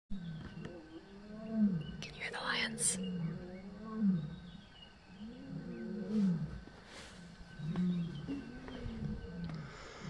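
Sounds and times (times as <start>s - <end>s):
lions roaring: 0.2s - 2.0s, 3.0s - 9.7s.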